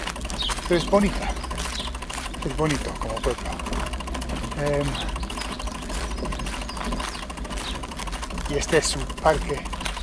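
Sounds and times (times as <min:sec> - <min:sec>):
bicycle freewheel ticking: 0:00.0 - 0:10.0
low steady rumble: 0:00.0 - 0:10.0.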